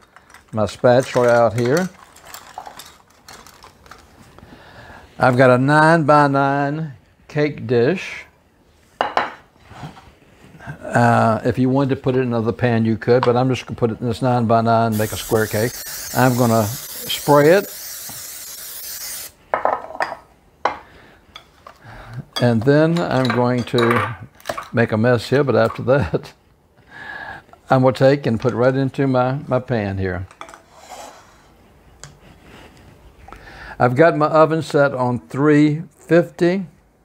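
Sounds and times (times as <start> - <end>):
kitchen utensils clicking and rustling: 0.0 - 4.3
aerosol spray hissing: 14.9 - 19.4
objects clunking on counter: 19.5 - 21.8.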